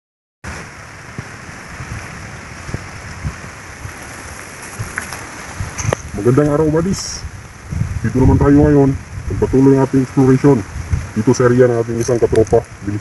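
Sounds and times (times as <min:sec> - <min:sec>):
outdoor rushing hiss: 0:00.4 - 0:13.0.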